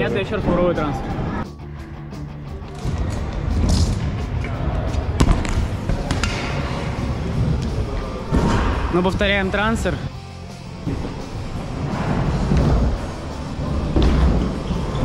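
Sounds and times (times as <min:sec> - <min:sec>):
background music: 0:00.0 - 0:15.0
scooter wheels rolling on ramp: 0:10.8 - 0:15.0.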